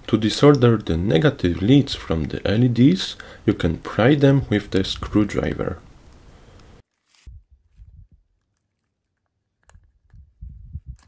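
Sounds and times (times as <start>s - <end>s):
small clicks and bumps: 7.8s - 11.0s.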